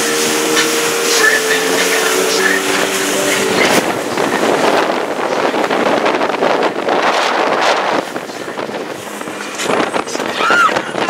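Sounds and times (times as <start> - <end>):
rush of moving boat: 0.0 - 11.0
wind buffeting microphone: 0.0 - 11.0.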